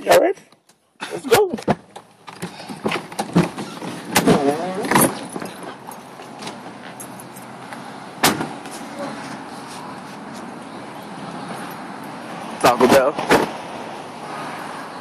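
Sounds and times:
outdoor traffic noise: 0.0 - 15.0.

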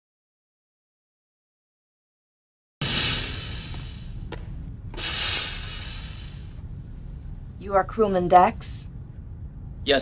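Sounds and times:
low steady hum: 2.8 - 10.0
sliding door hissing: 5.0 - 6.5.

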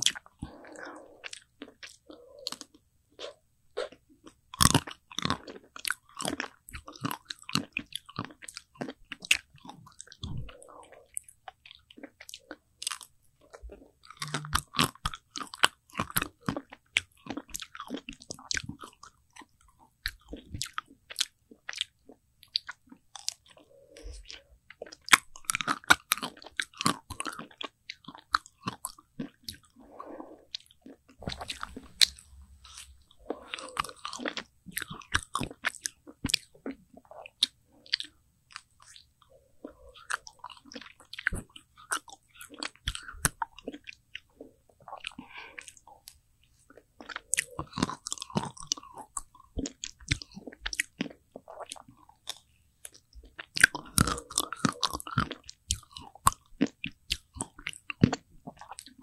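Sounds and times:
chewing: 0.0 - 59.0.

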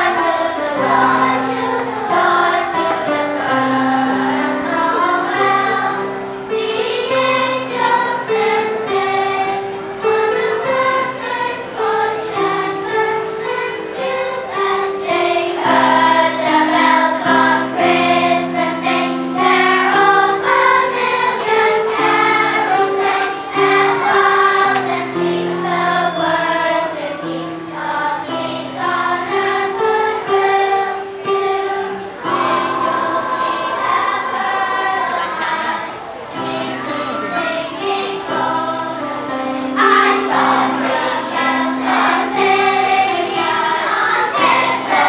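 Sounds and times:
children's choir singing: 0.0 - 45.0.

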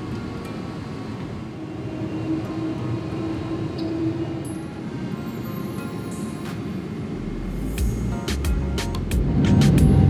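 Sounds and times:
airliner engine and wheel rumble: 0.0 - 10.0.

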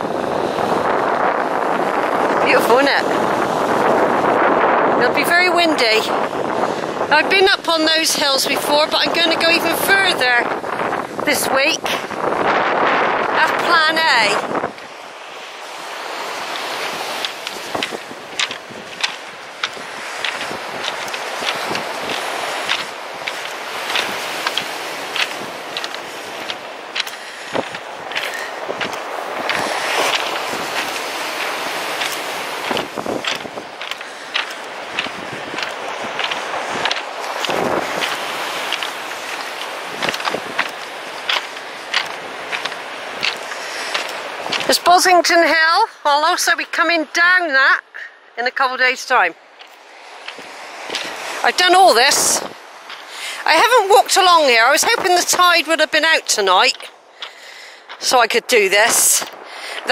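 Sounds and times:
wind on microphone: 0.0 - 46.8, 48.8 - 59.9
breaking surf: 0.0 - 47.8, 48.4 - 59.9
footsteps crunching on pebbles: 14.5 - 44.8, 49.4 - 59.9.

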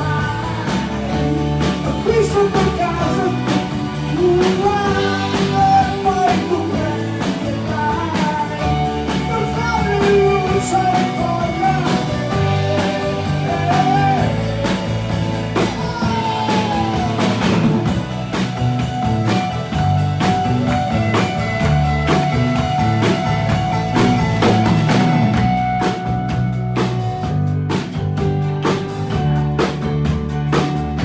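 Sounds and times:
person singing: 0.0 - 18.0
bass: 0.0 - 31.0
drum kit beat: 0.0 - 31.0
electric guitar: 0.0 - 31.0
keyboards: 0.0 - 31.0.

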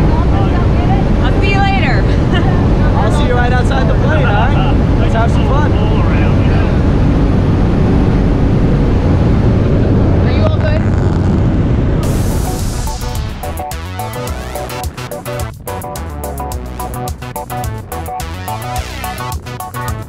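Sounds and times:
people's voices: 0.0 - 6.8
light aircraft engine drone: 0.0 - 15.6.

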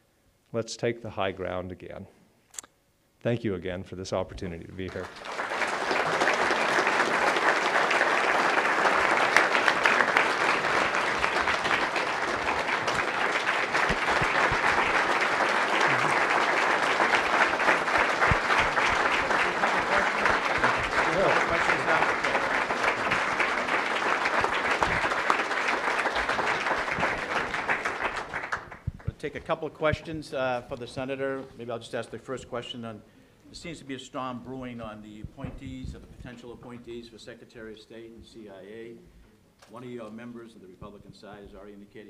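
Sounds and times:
audience applauding: 4.8 - 29.2.

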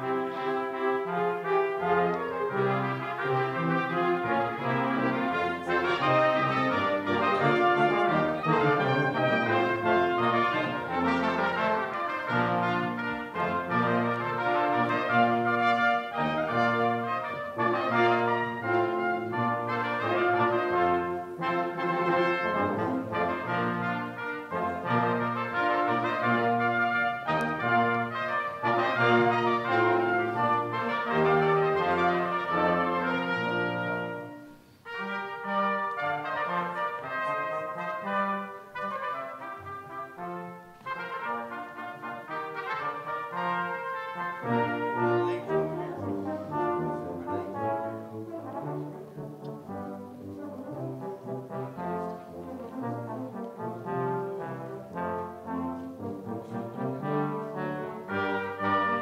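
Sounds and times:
brass ensemble playing chords: 0.0 - 59.0.

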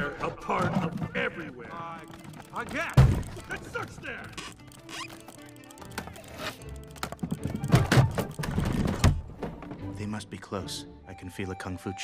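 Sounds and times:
wooden barrels rolling over stone: 0.0 - 9.7
film score music: 0.0 - 12.0.

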